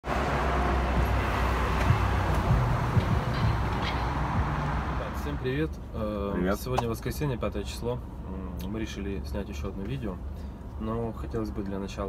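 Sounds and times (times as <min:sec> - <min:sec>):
car rolling past: 0:00.0 - 0:05.7
traffic rumble: 0:00.0 - 0:12.0.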